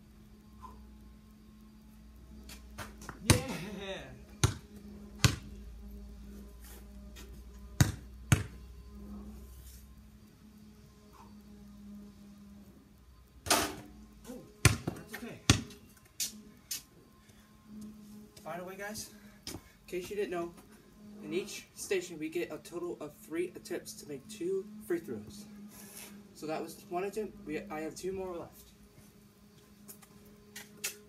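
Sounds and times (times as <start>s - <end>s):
basketball bouncing on concrete: 2.8s - 3.6s, 4.4s - 5.5s, 7.8s - 8.6s, 14.6s - 15.7s
basketball striking hoop: 4.4s - 4.6s, 5.2s - 5.5s, 7.8s - 8.6s, 14.6s - 15.7s.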